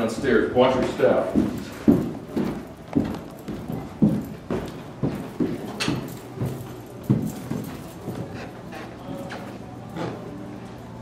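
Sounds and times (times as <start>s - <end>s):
footsteps going down stairs: 0.0s - 10.3s.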